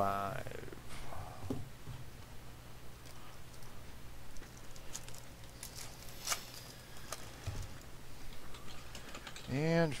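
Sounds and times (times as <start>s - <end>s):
low electrical hum: 0.0s - 10.0s
cards rustling and clicking: 4.4s - 7.3s.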